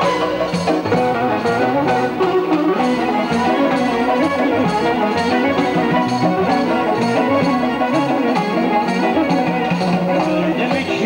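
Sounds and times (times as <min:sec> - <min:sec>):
double-reed woodwind melody: 0:00.0 - 0:11.0
percussion strikes: 0:00.0 - 0:11.0.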